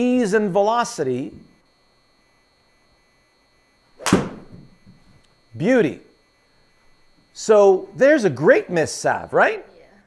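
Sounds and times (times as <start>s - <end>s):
golf club striking ball: 4.0s - 4.7s.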